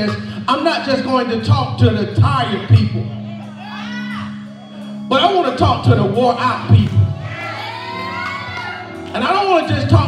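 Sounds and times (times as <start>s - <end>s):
church music chords: 0.0s - 10.0s.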